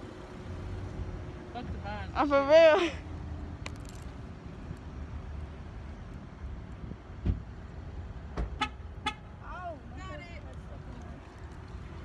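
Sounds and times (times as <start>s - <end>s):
traffic rumble: 0.0s - 12.0s
car horn beeps: 8.6s - 9.3s.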